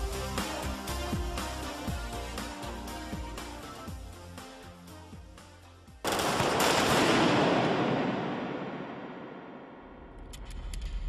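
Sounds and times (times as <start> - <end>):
pop backing music: 0.0 - 6.0
rapid rifle gunfire: 6.0 - 9.8.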